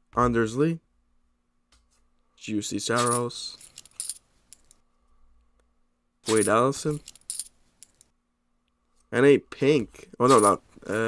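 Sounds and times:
trading cards rustling: 6.3s - 8.0s, 10.2s - 11.0s.

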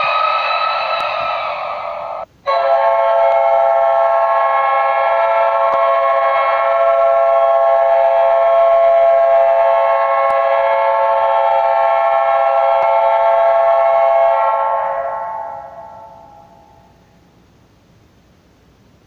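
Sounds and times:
goal horn blaring: 1.0s - 16.2s.

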